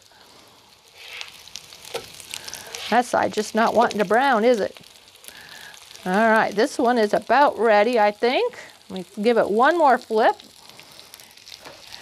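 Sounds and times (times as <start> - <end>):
fritters sizzling in oil: 0.0 - 12.0.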